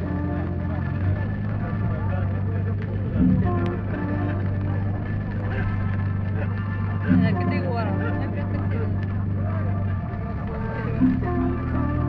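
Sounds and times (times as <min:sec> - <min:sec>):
low hum: 0:00.0 - 0:12.0
voice over a loudspeaker: 0:00.0 - 0:12.0.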